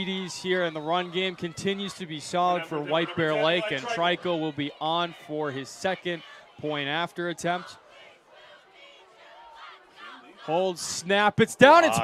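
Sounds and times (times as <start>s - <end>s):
distant shouting: 0.0s - 10.8s
faint crowd voices: 0.0s - 12.0s.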